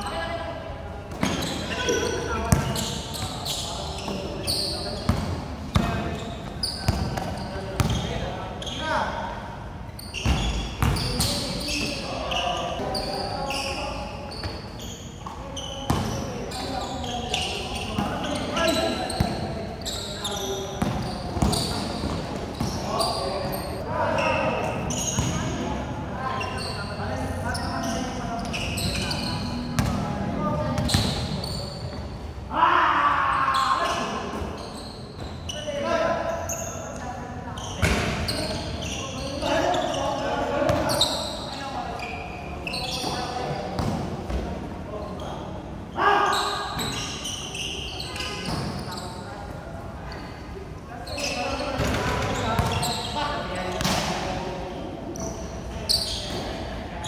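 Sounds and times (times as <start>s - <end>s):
basketball bouncing on hard court: 2.5s - 2.8s, 51.8s - 52.8s.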